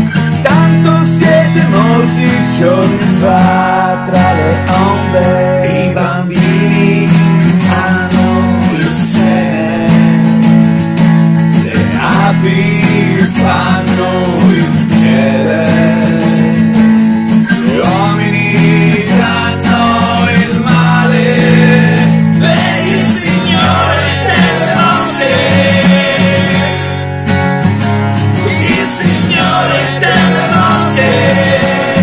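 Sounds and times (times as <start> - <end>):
strummed guitar: 0.0 - 32.0
sustained bass notes: 0.0 - 32.0
person singing: 0.4 - 10.4, 11.6 - 27.0, 28.4 - 32.0.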